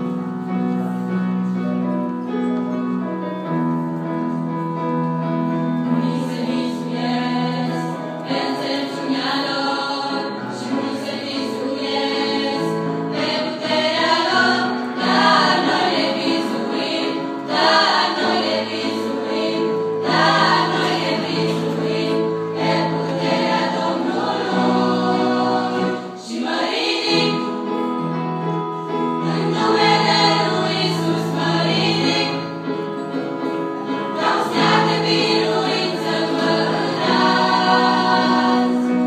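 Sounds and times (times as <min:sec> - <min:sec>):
girls' choir singing: 0:05.9 - 0:27.8, 0:29.0 - 0:39.0.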